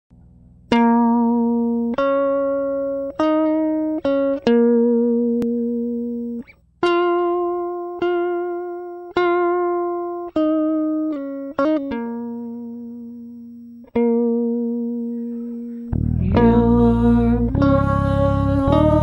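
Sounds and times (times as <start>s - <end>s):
slow plucked-note melody: 0.2s - 19.0s.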